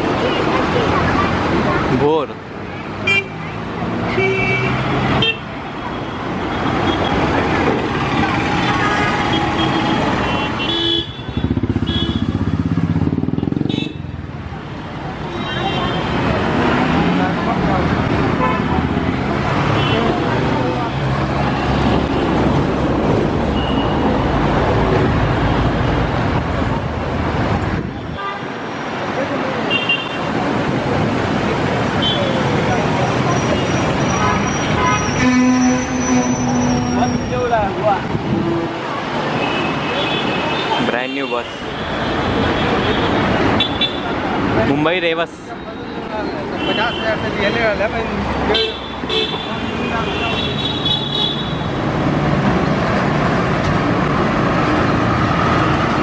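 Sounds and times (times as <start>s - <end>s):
vehicle engines passing: 0.0s - 56.0s.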